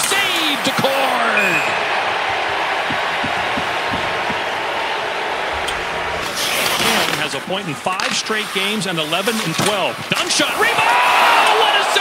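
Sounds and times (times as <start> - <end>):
arena crowd noise: 0.0 - 12.0
faint low knocks: 2.8 - 4.6.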